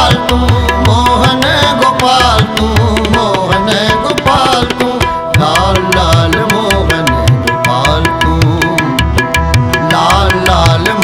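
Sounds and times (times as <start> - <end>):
sustained harmonium: 0.0 - 11.0
tabla playing rhythm: 0.0 - 11.0.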